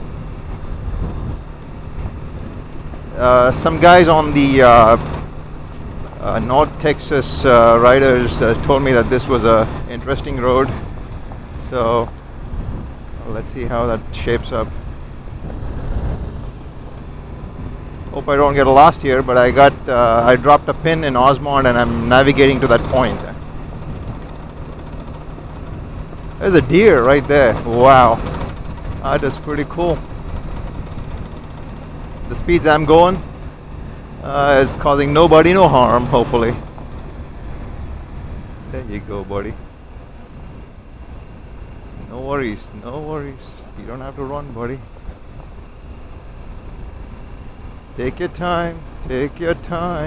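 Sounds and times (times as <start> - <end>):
wind noise: 0.0 - 6.8, 7.5 - 18.8, 21.4 - 35.2
motorcycle engine cruising: 0.0 - 50.0
tyres on gravel: 0.0 - 50.0.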